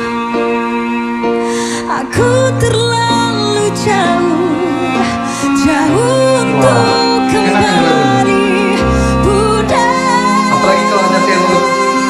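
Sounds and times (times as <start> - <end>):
keyboard accompaniment: 0.0 - 12.0
sustained cello: 0.0 - 12.0
woman singing a slow ballad: 1.7 - 12.0.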